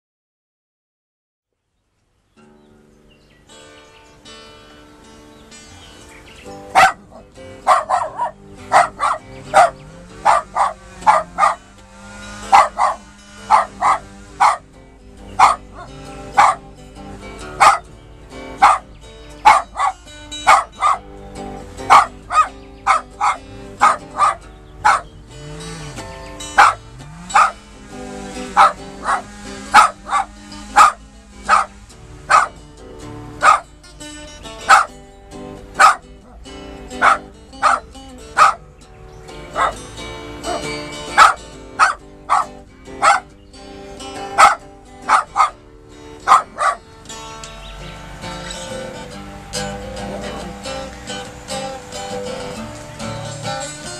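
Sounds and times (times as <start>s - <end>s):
bluesy acoustic guitar: 2.3s - 53.9s
small dog barking: 6.7s - 11.7s, 12.3s - 14.7s, 15.3s - 16.7s, 17.5s - 17.9s, 18.5s - 21.1s, 21.8s - 25.2s, 26.5s - 27.6s, 28.3s - 32.6s, 33.4s - 33.8s, 34.6s - 35.0s, 35.7s - 36.4s, 37.0s - 38.6s, 39.5s - 43.4s, 44.1s - 45.6s, 46.2s - 46.8s.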